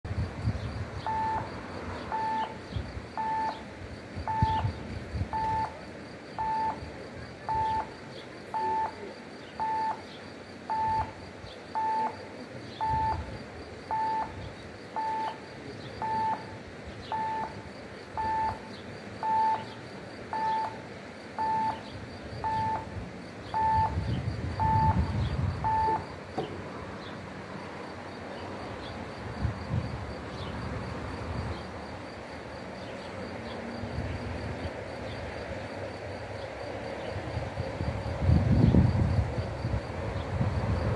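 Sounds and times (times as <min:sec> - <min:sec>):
level crossing warning beeps: 0:01.0 - 0:05.8, 0:06.4 - 0:10.1, 0:10.7 - 0:20.8, 0:21.4 - 0:26.2.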